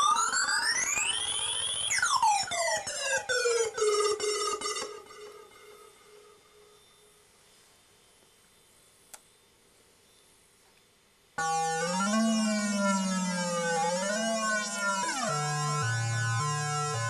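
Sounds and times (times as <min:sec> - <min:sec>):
synthesizer electronic tones: 0:00.0 - 0:07.2, 0:11.4 - 0:17.0.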